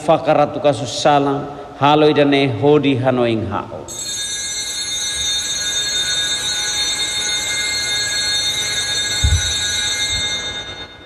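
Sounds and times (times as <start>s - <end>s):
altar bells jingling: 3.9s - 11.0s
low thumps: 9.2s - 10.4s.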